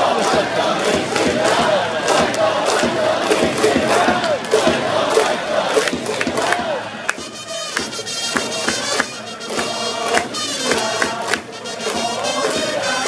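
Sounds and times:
stadium crowd chanting and cheering: 0:00.0 - 0:13.0.

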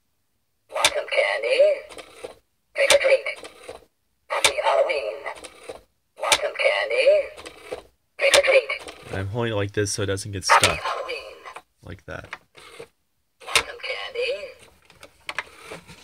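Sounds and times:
recorded voice from small speaker: 0:00.7 - 0:02.0, 0:02.7 - 0:03.5, 0:04.3 - 0:05.5, 0:06.2 - 0:07.5, 0:08.2 - 0:12.3, 0:13.4 - 0:14.7
toy click: 0:00.8 - 0:01.2, 0:01.8 - 0:06.6, 0:07.3 - 0:09.0, 0:12.3 - 0:14.7.

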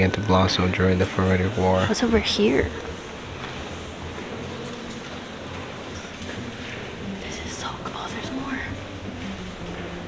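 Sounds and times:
low murmur of voices: 0:00.0 - 0:10.0.

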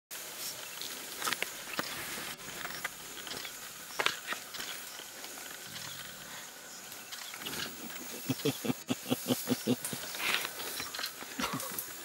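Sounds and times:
sharp crackles and snaps: 0:00.4 - 0:06.2.

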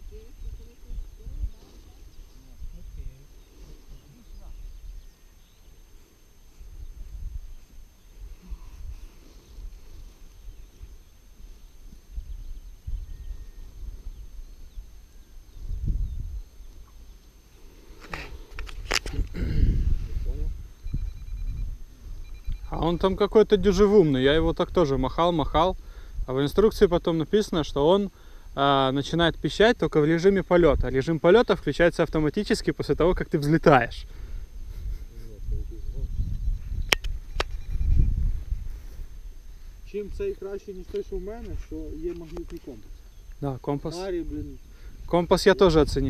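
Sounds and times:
wind rumbling on microphone: 0:00.0 - 0:05.2, 0:06.3 - 0:17.2, 0:17.8 - 0:26.7, 0:34.1 - 0:43.3, 0:44.1 - 0:46.0.

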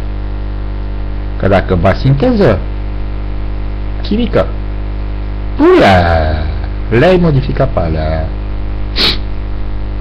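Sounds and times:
electrical mains hum: 0:00.0 - 0:10.0
sharp breath: 0:08.9 - 0:09.3.

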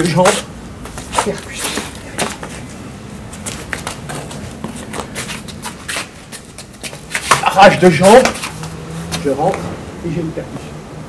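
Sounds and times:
shoes shuffling on stone: 0:00.0 - 0:09.7.

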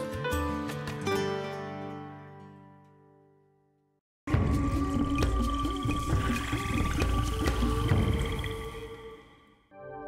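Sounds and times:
atmospheric music: 0:04.3 - 0:10.0.

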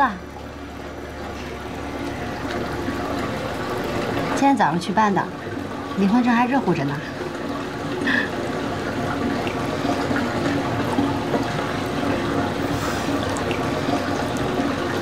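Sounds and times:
rushing and trickling water: 0:00.0 - 0:15.0.

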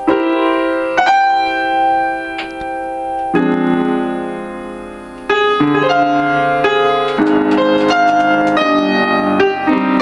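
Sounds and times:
jazz piano improvisation: 0:00.0 - 0:10.0.

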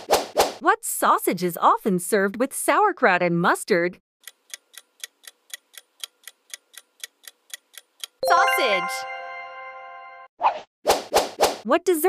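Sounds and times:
fast clock ticking: 0:04.2 - 0:08.2.

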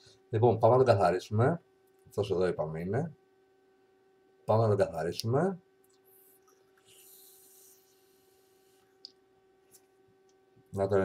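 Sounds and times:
faint electrical hum: 0:00.0 - 0:11.0
e-cigarette vapour hiss: 0:06.1 - 0:09.0.

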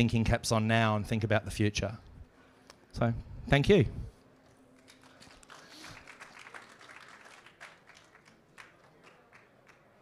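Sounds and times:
scattered applause: 0:04.7 - 0:10.0.

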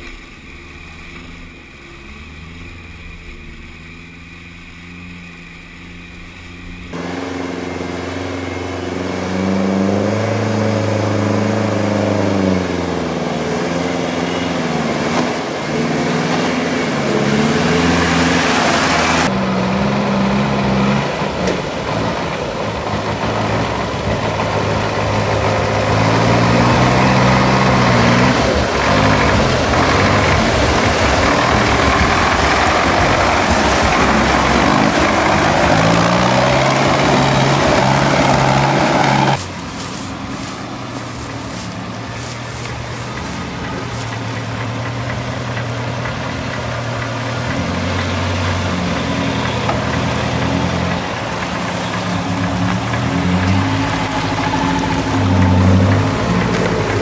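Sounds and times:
churning water hiss: 0:00.0 - 0:57.0
off-road vehicle engines revving: 0:00.0 - 0:57.0
truck engine revving: 0:00.0 - 0:57.0.

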